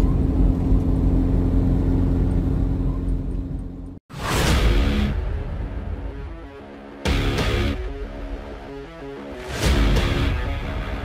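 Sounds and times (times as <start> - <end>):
car engine and road rumble: 0.0 - 4.0
music: 4.1 - 11.0.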